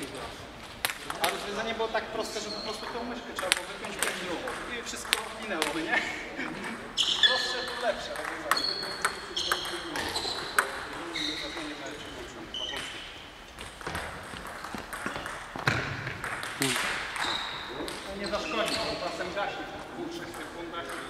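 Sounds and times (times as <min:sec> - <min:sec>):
table tennis balls clicking: 0:03.4 - 0:05.9, 0:06.6 - 0:11.0, 0:12.7 - 0:19.0, 0:20.3 - 0:21.0.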